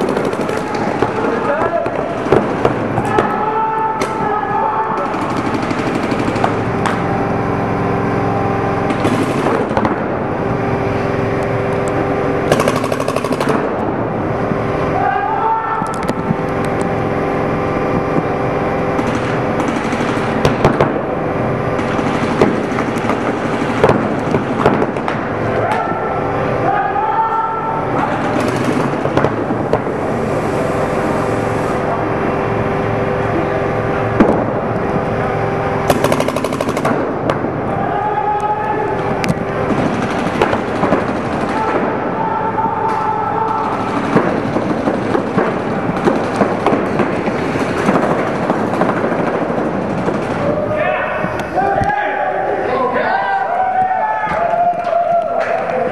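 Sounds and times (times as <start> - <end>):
voices shouting: 0.0 - 6.7, 14.8 - 16.3, 25.4 - 28.9, 37.6 - 39.8, 40.6 - 44.4, 50.4 - 55.9
paintball markers firing: 12.5 - 13.8, 35.9 - 37.4.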